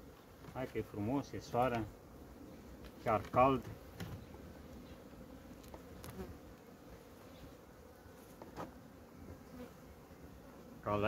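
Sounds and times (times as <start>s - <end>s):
honeybees buzzing: 0.0s - 11.0s
hive handling clicks: 5.5s - 6.3s.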